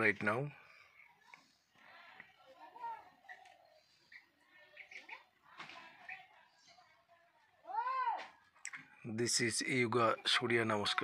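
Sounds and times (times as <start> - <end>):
faint chirp: 0.4 - 7.5.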